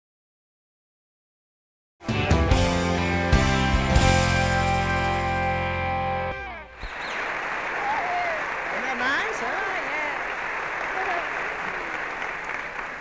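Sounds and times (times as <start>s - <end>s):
audience applauding: 6.5s - 13.0s.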